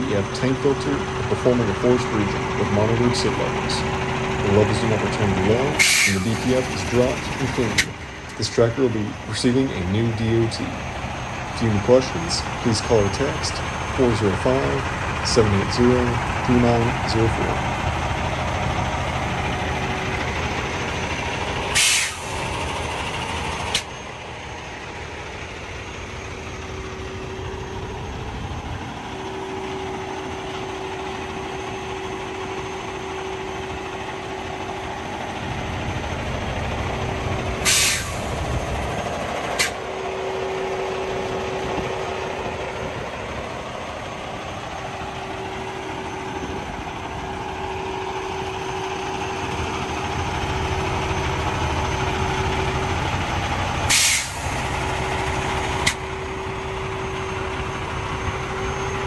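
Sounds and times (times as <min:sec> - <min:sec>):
diesel truck idling: 0:00.0 - 0:59.0
air hiss burst: 0:05.8 - 0:06.2, 0:21.8 - 0:22.2, 0:37.7 - 0:38.1, 0:53.9 - 0:54.5.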